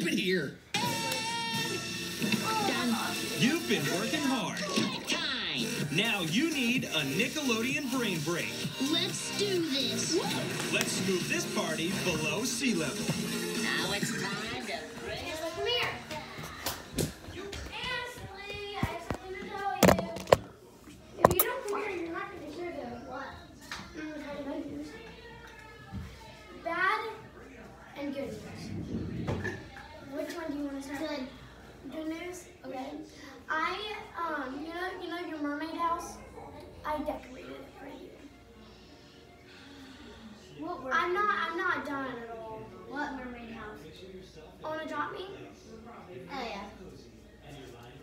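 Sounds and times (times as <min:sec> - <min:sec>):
background music: 0:00.0 - 0:18.5, 0:36.4 - 0:43.0
television speech: 0:00.0 - 0:48.0.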